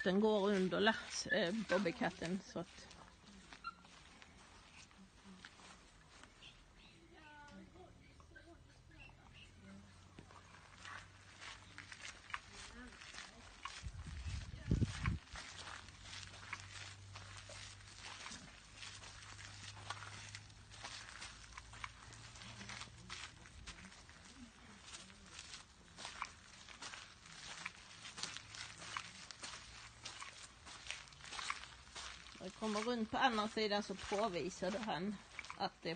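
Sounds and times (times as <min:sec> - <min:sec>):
footsteps on gravel: 0:00.0 - 0:06.6, 0:10.2 - 0:35.9.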